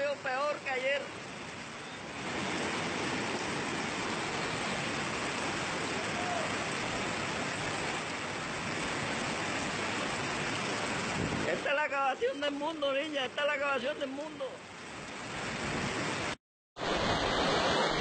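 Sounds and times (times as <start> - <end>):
floodwater rushing and surging: 0.0 - 18.0
heavy rain: 0.0 - 18.0.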